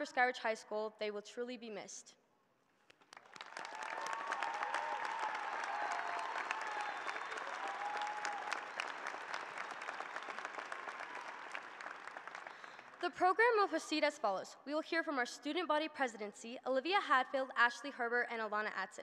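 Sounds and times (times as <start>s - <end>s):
crowd applauding: 2.9s - 13.0s.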